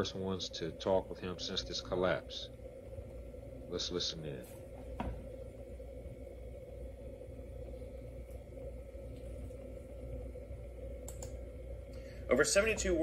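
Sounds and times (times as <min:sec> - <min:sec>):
faint constant tone: 0:00.0 - 0:13.0
low background hum: 0:00.0 - 0:13.0.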